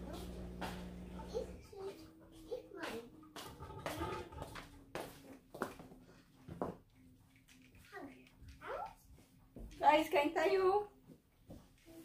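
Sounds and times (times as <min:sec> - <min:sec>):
steady low hum: 0:00.0 - 0:04.3.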